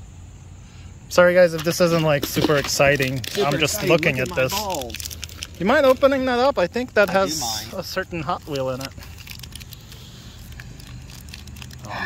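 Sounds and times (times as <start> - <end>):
wrapper crinkling: 2.2 - 12.0.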